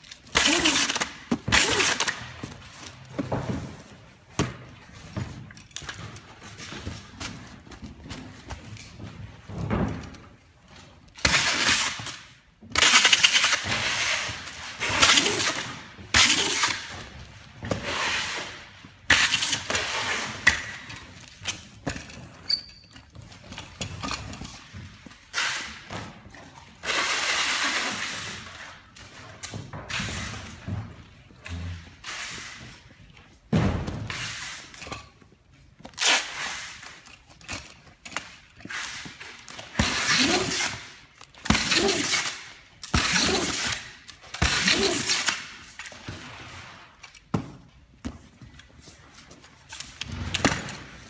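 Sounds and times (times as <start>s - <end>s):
packing tape pulled off roll: 0.0s - 3.0s, 11.1s - 17.2s, 17.8s - 22.7s, 35.8s - 47.3s
packing tape screeching: 0.2s - 2.3s, 14.8s - 16.9s, 39.7s - 45.8s.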